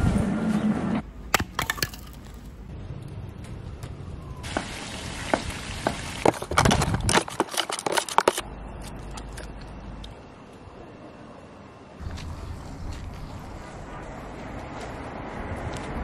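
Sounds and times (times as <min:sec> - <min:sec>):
firewood being split: 0:01.3 - 0:02.5, 0:06.2 - 0:08.4.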